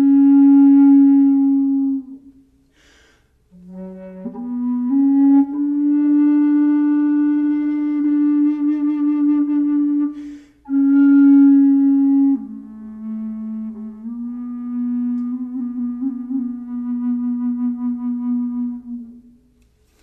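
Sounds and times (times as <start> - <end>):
bass flute played slowly: 0.0 - 19.6
breath intake: 2.7 - 3.4.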